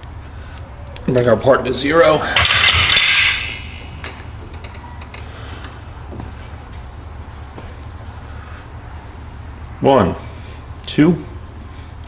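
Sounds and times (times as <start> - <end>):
low machine hum: 0.0 - 12.0
metal tools clattering: 2.2 - 5.2.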